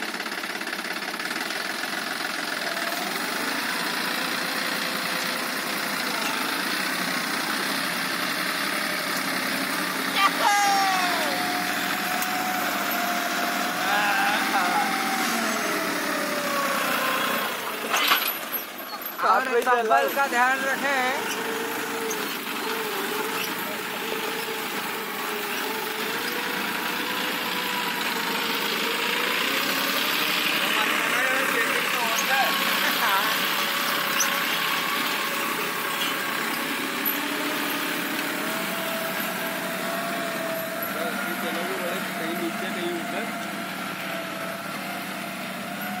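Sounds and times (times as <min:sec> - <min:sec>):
tractor diesel engine under load: 0:00.0 - 0:46.0.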